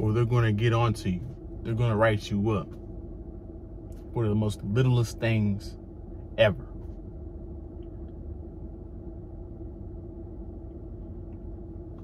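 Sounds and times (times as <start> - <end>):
car engine rumble and hum: 0.0 - 12.0.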